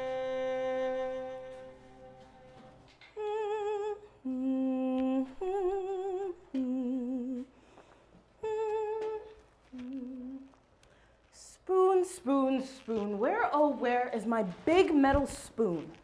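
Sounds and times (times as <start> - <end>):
woman humming: 3.2 - 7.5, 8.4 - 10.6.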